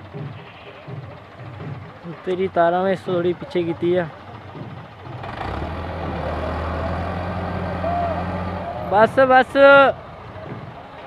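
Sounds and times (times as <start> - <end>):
tractor diesel engine straining: 0.0 - 11.0.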